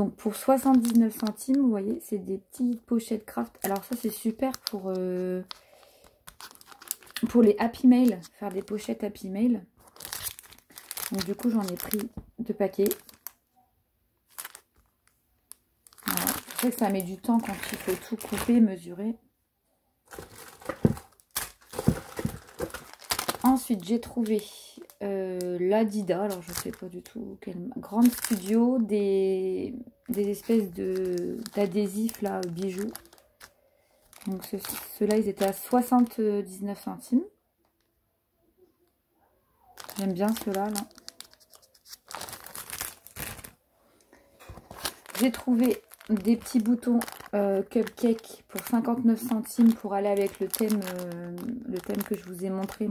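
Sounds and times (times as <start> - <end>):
plastic packets crinkling: 0.3 - 1.7, 2.6 - 13.5, 14.2 - 18.7, 20.1 - 27.2, 27.8 - 28.9, 29.9 - 36.2, 39.8 - 43.6, 44.2 - 52.9.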